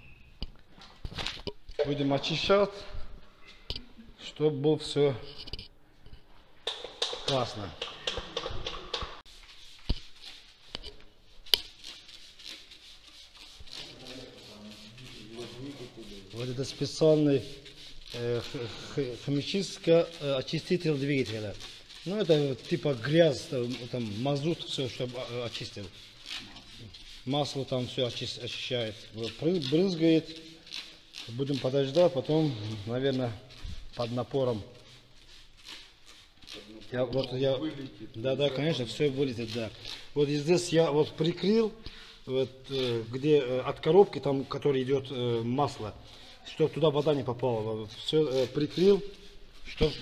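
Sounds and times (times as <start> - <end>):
man speaking: 1.8 - 2.9, 36.5 - 50.0
aerosol can spraying: 11.4 - 37.4.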